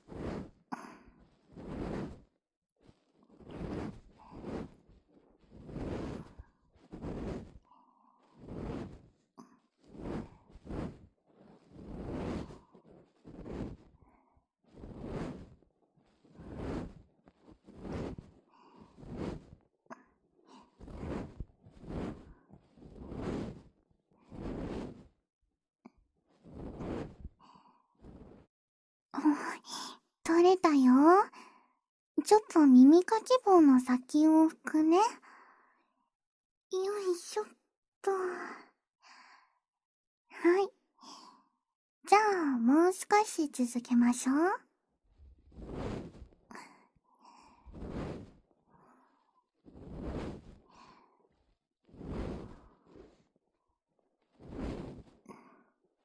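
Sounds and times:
ear pick scraping in ear: 9.8 - 13.9, 24.3 - 25.1, 26.4 - 27.2, 45.5 - 46.2, 49.7 - 50.6.

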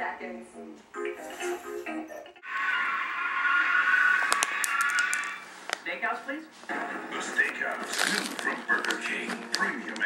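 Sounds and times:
steady musical tone from television: 0.0 - 10.0.

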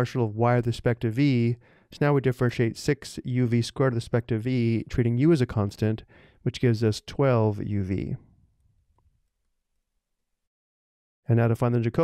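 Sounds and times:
man narrating: 0.0 - 8.2, 11.3 - 12.0.

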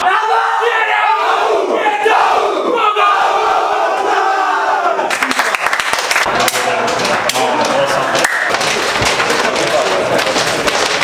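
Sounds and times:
team shouting rallying cry: 0.0 - 5.1
scattered voices: 6.3 - 11.0.

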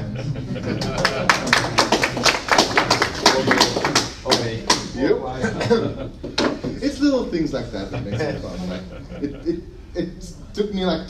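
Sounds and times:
audience clapping: 0.7 - 4.9.

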